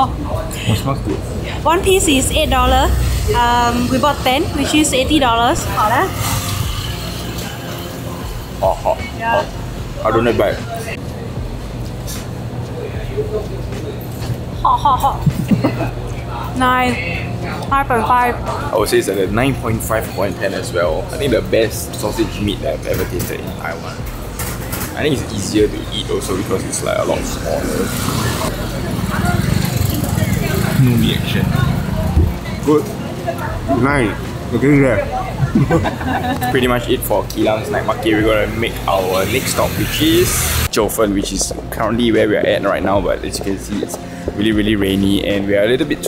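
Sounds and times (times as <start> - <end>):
street background noise: 0.0 - 46.0
faint voices: 22.3 - 41.8.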